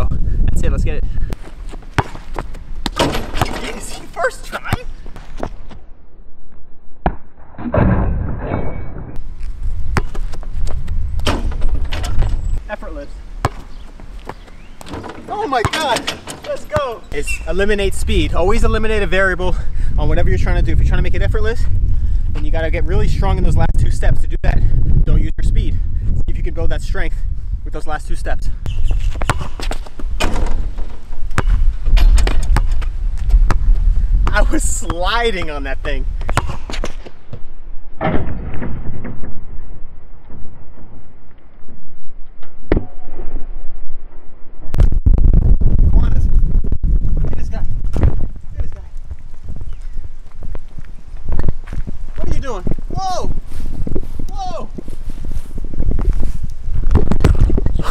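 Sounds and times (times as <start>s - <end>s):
wind rumble on microphone: 0.0s - 6.8s, 7.8s - 15.5s, 17.0s - 57.9s
footsteps: 1.3s - 4.2s, 13.4s - 17.2s, 47.8s - 57.6s
basketball bouncing on asphalt: 1.4s - 3.6s, 9.7s - 11.7s, 13.4s - 15.1s, 28.7s - 35.5s, 36.2s - 37.5s
basketball striking hoop: 2.8s - 3.7s, 13.4s - 17.0s, 29.2s - 32.9s, 36.3s - 37.0s
steady low rumble: 29.9s - 36.8s.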